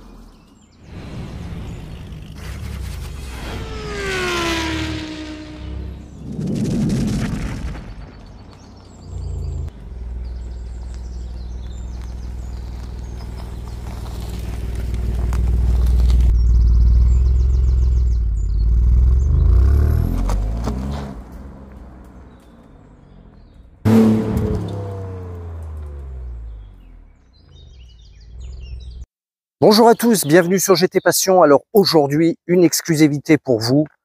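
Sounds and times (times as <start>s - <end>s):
car engine idling: 8.5s - 19.5s.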